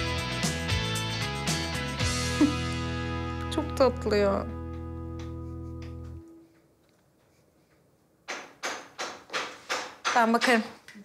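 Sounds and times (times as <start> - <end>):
knocking on door: 8.3 - 10.7.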